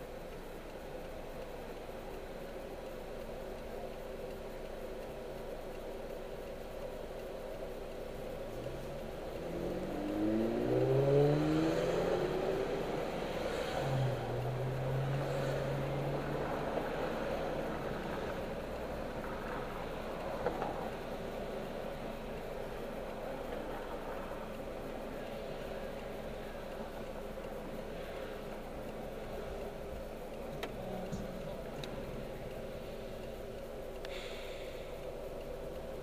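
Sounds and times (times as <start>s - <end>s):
low road hum: 0.0s - 36.0s
car engine accelerating: 7.8s - 36.0s.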